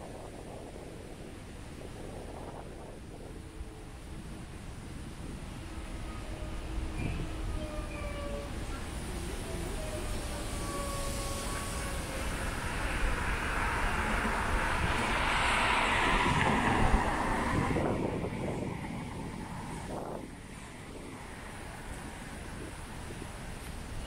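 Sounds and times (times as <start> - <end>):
car passing: 10.4 - 22.7.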